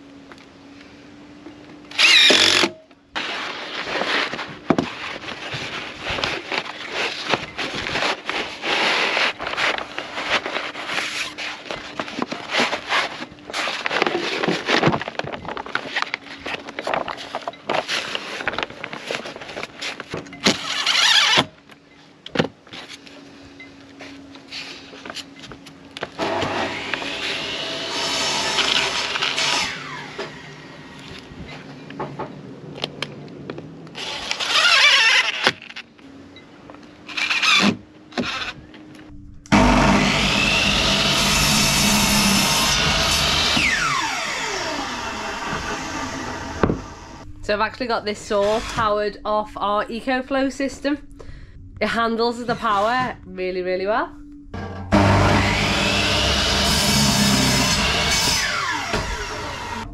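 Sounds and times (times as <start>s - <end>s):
cordless drill whirring: 1.9s - 2.8s, 20.5s - 21.5s, 34.0s - 35.5s, 37.1s - 38.6s, 39.5s - 47.2s.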